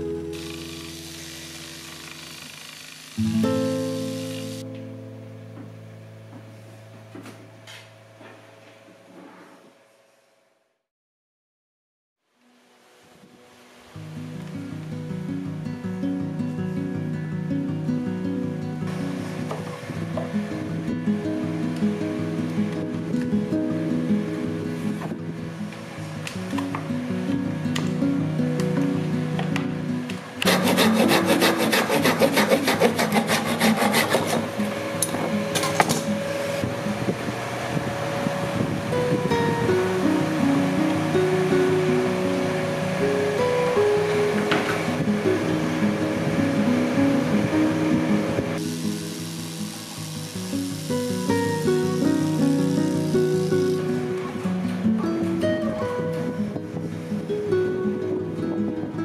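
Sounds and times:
background music: 25.8 - 36.6
hand tool scraping bamboo: 30.4 - 34.5.

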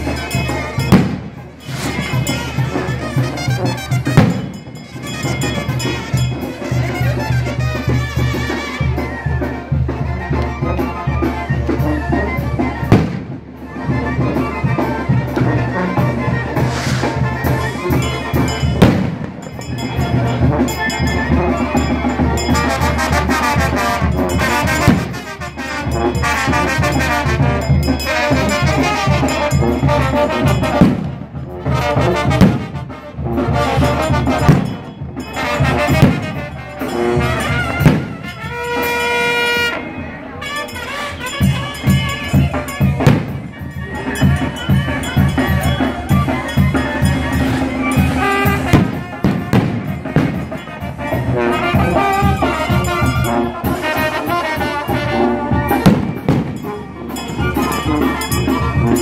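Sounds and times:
brass band marching: 0.0 - 59.0.

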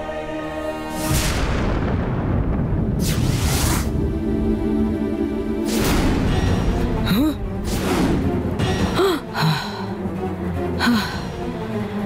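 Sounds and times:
dramatic background music: 0.0 - 12.0
breathy gasps: 8.9 - 10.1.

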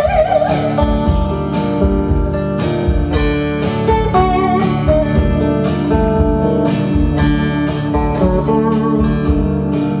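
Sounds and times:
slide guitar playing: 0.0 - 10.0.

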